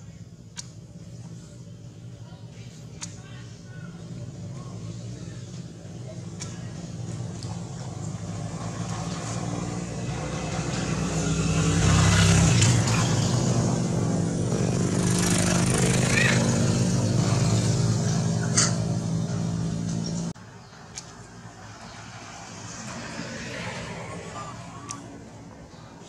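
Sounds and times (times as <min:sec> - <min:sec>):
vehicle engine running: 0:00.0 - 0:20.4.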